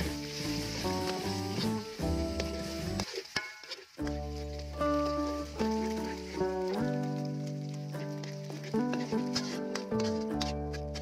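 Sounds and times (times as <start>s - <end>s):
melodic background music: 0.0s - 3.1s, 4.0s - 11.0s
eggs sizzling in hot oil: 0.0s - 11.0s
metal spatula scrambling eggs: 2.4s - 11.0s.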